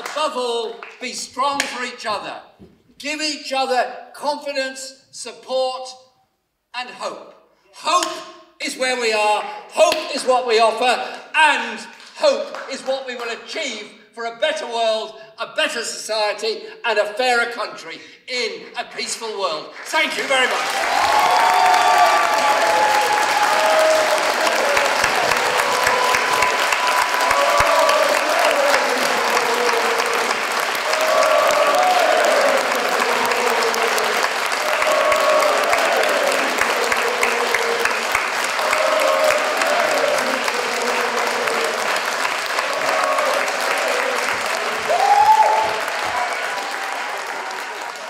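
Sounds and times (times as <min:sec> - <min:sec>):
large audience applauding: 0:00.0 - 0:01.8, 0:11.8 - 0:13.0, 0:19.8 - 0:48.0.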